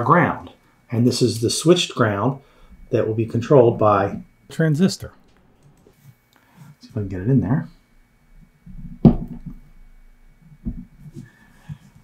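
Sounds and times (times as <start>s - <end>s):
wire knocking into breadboard: 8.7s - 9.6s.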